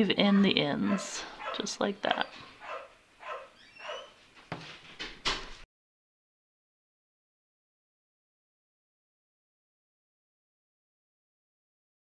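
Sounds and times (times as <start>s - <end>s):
puppy whining: 0.8s - 4.2s
knock: 4.5s - 5.6s.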